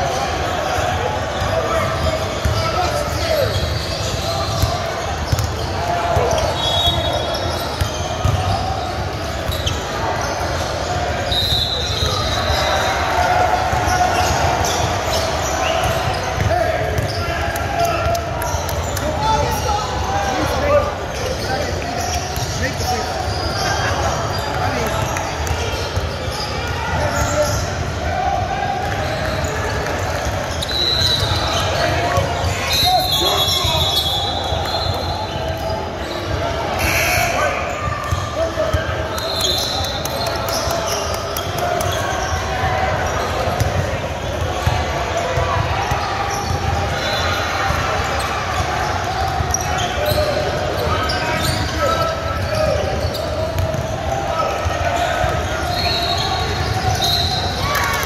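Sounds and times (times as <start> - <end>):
sneakers squeaking: 0.0 - 28.2, 28.8 - 58.0.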